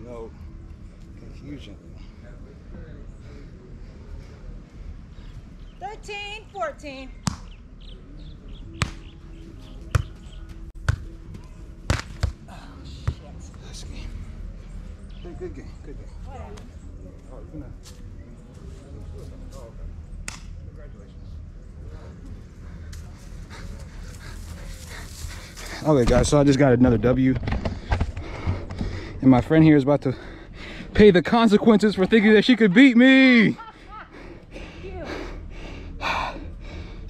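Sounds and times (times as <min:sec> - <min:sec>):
faint distant voices: 0:00.0 - 0:37.0
person breathing hard: 0:27.7 - 0:29.2, 0:30.1 - 0:30.9, 0:33.7 - 0:37.0.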